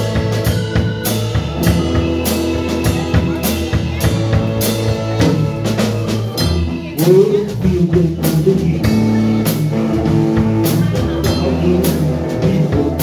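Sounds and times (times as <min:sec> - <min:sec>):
drum kit: 0:00.0 - 0:13.0
electric guitars: 0:00.0 - 0:13.0
keyboard: 0:00.0 - 0:13.0.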